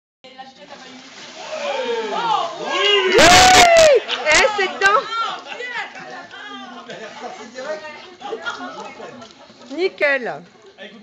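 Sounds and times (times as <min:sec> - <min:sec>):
long loud held shout: 0:01.4 - 0:04.1
people shouting and cheering: 0:01.4 - 0:06.8.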